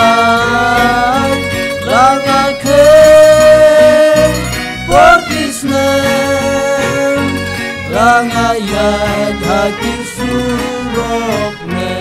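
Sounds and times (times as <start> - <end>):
band playing gospel song: 0.0 - 12.0
guitar and bass accompaniment: 0.0 - 12.0.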